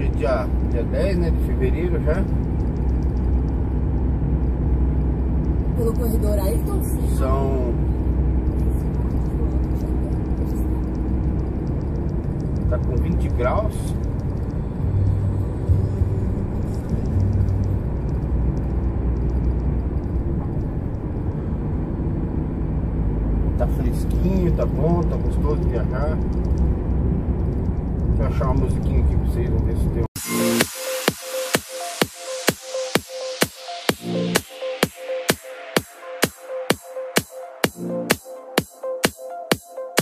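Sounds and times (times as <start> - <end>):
truck engine drone in cab: 0.0 - 36.7
road noise: 0.0 - 40.0.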